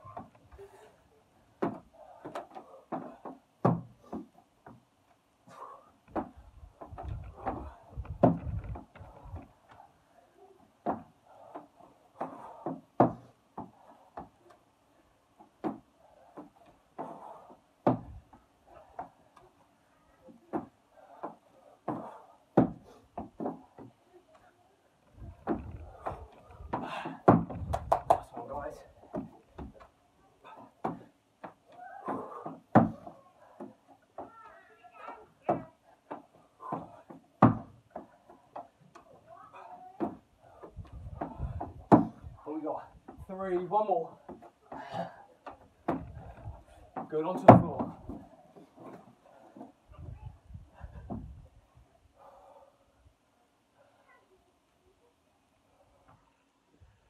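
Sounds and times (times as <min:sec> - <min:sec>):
thumps on wooden decking: 0:01.6 - 0:04.8, 0:06.1 - 0:09.5, 0:17.8 - 0:18.4, 0:20.5 - 0:24.0, 0:25.3 - 0:28.2, 0:30.8 - 0:34.3, 0:35.4 - 0:38.7, 0:40.0 - 0:42.3, 0:45.4 - 0:49.7, 0:51.0 - 0:51.3
man breathing hard: 0:15.9 - 0:19.3, 0:25.7 - 0:27.4, 0:44.7 - 0:47.0.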